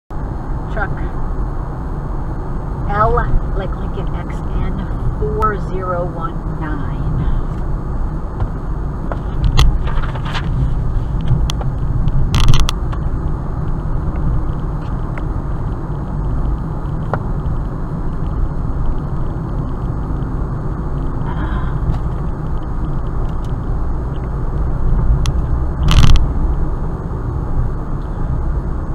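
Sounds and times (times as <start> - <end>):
car road noise inside cabin: 0.1 - 28.9
sharp rattles and thumps: 7.1 - 20.3, 21.0 - 26.7.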